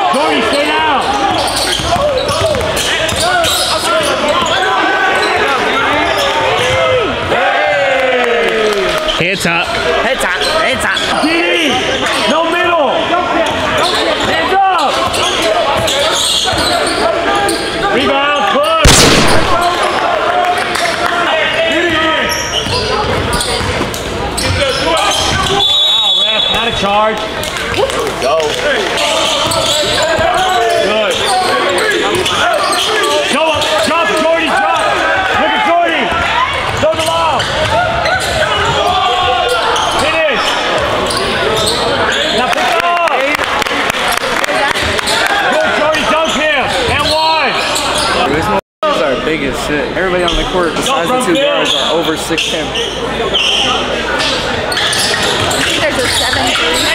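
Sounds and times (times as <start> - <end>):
voices of players and spectators: 0.0 - 56.9
loud bang: 18.8 - 20.0.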